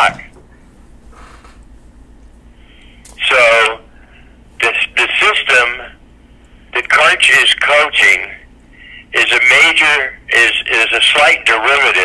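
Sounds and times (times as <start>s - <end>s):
man speaking: 0.0s - 0.3s, 3.2s - 3.9s, 4.6s - 6.0s, 6.8s - 12.0s
low steady hum: 0.0s - 12.0s.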